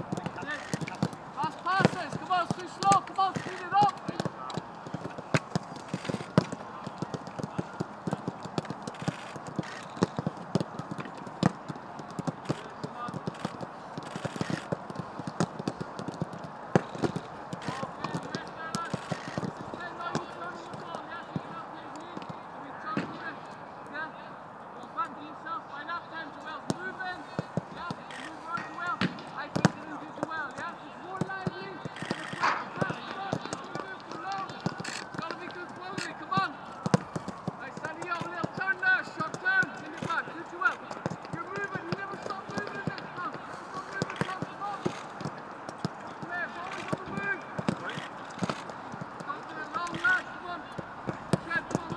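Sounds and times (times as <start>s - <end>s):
players shouting: 0.0s - 22.8s, 25.2s - 51.9s
footballs being kicked: 0.0s - 23.3s, 26.6s - 51.9s.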